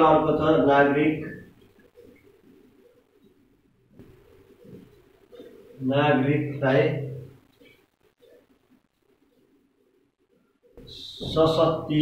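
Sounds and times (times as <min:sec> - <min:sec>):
faint dove cooing: 0:01.4 - 0:03.6, 0:04.2 - 0:05.8.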